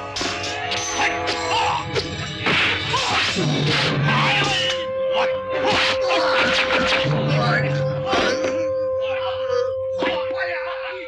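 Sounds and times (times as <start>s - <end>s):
film score music: 0.0s - 11.0s
swishes and whacks of blows: 2.4s - 4.0s, 5.6s - 7.1s.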